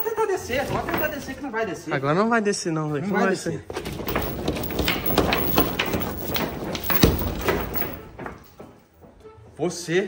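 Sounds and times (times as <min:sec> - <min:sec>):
chain and padlock rattling: 0:00.0 - 0:01.5, 0:03.2 - 0:08.6.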